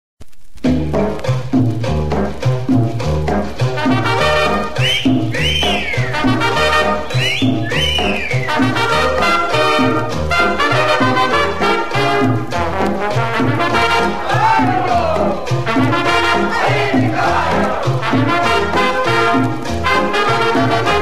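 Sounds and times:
latin dance orchestra: 0:00.7 - 0:21.0
brass sliding notes: 0:03.7 - 0:21.0.

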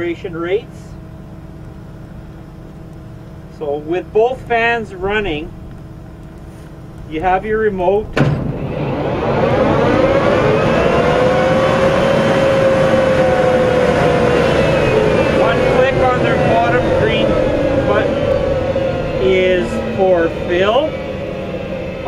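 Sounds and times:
fans whining: 0:00.0 - 0:22.0.

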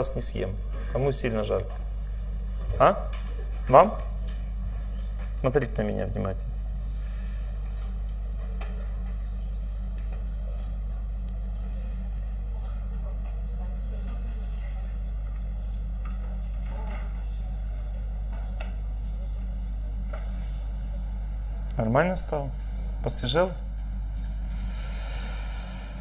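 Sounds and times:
low hum: 0:00.0 - 0:26.0.

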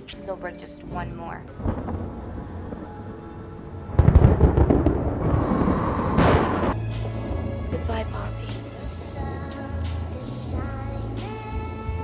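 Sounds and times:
film score low notes: 0:00.0 - 0:12.0
loud thunderclap rumbling: 0:01.5 - 0:10.7.

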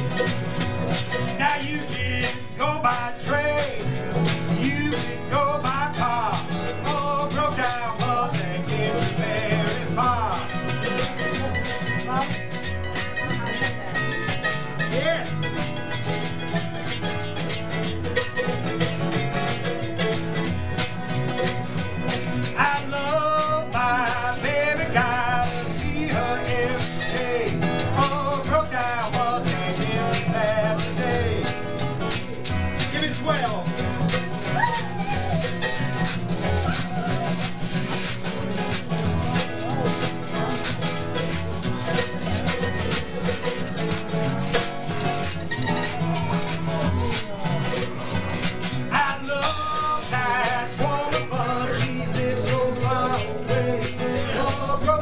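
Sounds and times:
hand percussion: 0:00.0 - 0:55.0
mandolin: 0:00.0 - 0:55.0
strummed acoustic guitar: 0:00.0 - 0:55.0.

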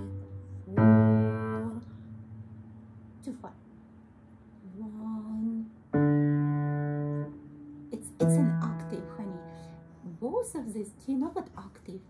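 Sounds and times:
piano notes: 0:00.0 - 0:10.8.

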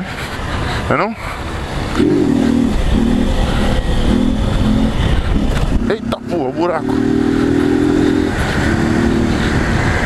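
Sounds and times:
wind rumble on microphone: 0:01.7 - 0:10.0
motorcycle engine revving: 0:01.9 - 0:10.0.

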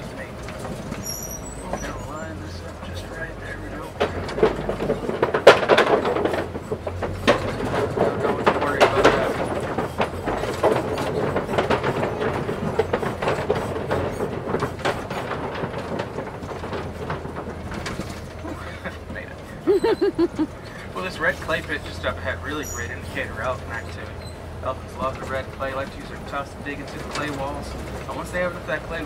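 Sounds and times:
vehicle knocks and rattles: 0:00.0 - 0:19.6, 0:20.4 - 0:29.0
truck engine hum: 0:00.0 - 0:29.0.

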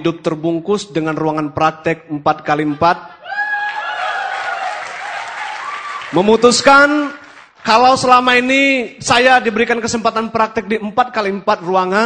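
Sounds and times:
audience applauding: 0:03.5 - 0:07.8.

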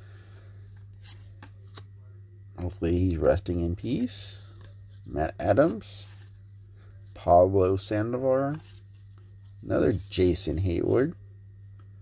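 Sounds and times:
steady low hum: 0:00.0 - 0:12.0
trading cards being handled: 0:00.6 - 0:02.0, 0:02.6 - 0:07.2, 0:08.4 - 0:10.4.

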